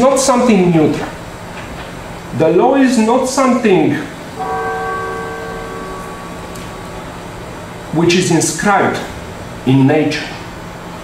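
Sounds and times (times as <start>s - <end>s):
bell-like chime: 4.4s - 7.9s.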